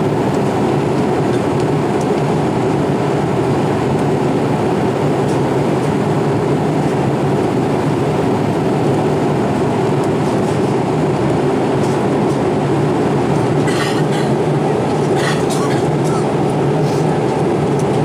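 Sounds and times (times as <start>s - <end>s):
airplane cabin noise: 0.0s - 18.0s.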